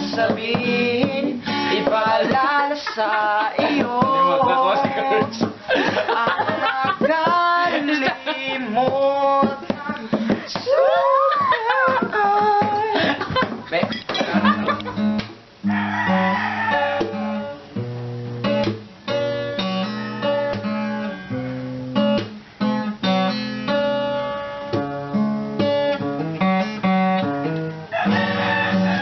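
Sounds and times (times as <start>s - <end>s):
nylon-string acoustic guitars: 0.0s - 29.0s.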